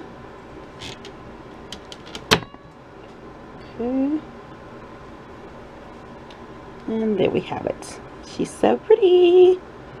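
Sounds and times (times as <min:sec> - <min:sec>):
dehumidifier running: 0:00.0 - 0:10.0.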